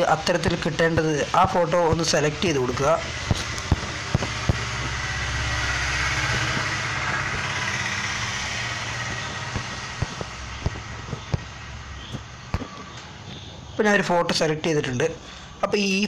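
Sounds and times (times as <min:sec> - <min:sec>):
vehicle engine rumble passing: 0:01.2 - 0:13.8.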